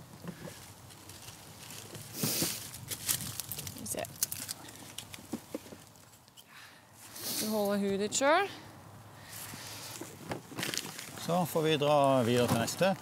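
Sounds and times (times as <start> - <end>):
short breathy hiss: 2.1 - 2.6, 6.5 - 7.6, 9.2 - 10.0
rustling of hands and clothing: 9.3 - 13.0.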